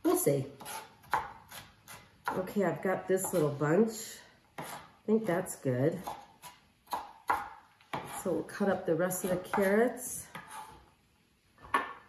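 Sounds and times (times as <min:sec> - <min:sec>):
knife chopping on cutting board: 0:00.6 - 0:02.5, 0:03.2 - 0:03.5, 0:04.6 - 0:05.0, 0:06.0 - 0:08.3, 0:09.2 - 0:10.8.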